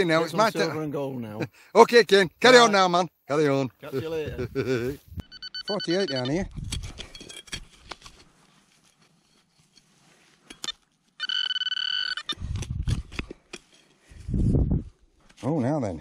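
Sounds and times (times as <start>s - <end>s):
metal detector beep: 5.2s - 6.5s, 10.6s - 12.4s.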